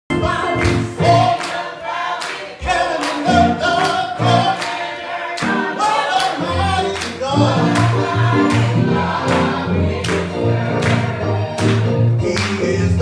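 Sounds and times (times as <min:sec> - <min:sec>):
group of voices singing gospel: 0:00.1 - 0:13.0
instrumental accompaniment: 0:03.1 - 0:13.0.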